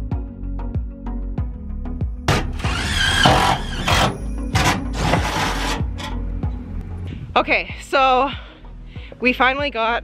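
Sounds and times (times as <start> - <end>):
background music with steady beat: 0.0 - 10.0
cordless drill whine: 2.5 - 5.1.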